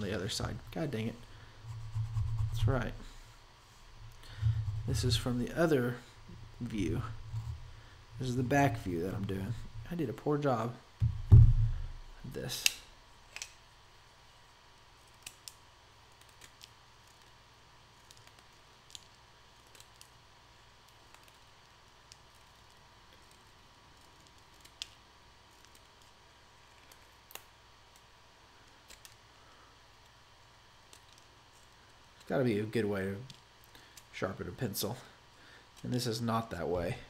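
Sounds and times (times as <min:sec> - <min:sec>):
low steady hum: 0:00.0 - 0:37.0
blade shaving pencil wood: 0:14.9 - 0:29.2.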